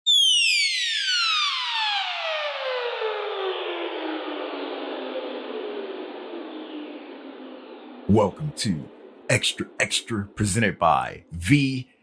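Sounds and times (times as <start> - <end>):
synthesized whistle gliding down: 0.1 - 10.4.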